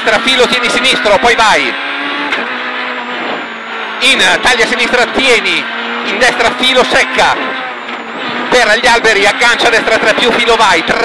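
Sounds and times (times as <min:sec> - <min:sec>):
rally car engine running hard: 0:00.0 - 0:11.0.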